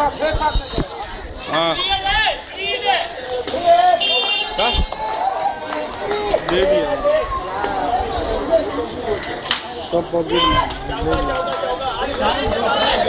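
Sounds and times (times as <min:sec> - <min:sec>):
people calling out and talking: 0:00.0 - 0:13.0.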